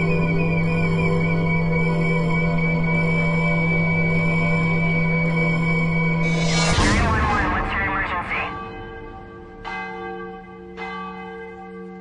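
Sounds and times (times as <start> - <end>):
church bell tolling: 8.4 - 12.0.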